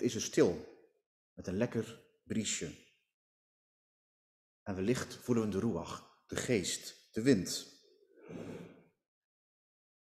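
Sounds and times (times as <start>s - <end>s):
man breathing into microphone: 8.2s - 8.9s.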